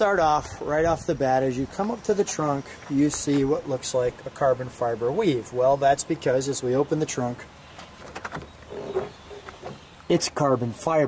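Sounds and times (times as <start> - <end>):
trunk lid creaking: 7.7 - 10.4
latch clicks: 7.8 - 9.8.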